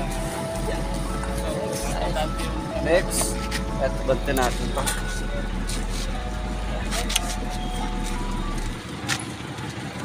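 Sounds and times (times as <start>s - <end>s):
faint voices: 0.0s - 10.0s
vehicle engine idling: 0.0s - 10.0s.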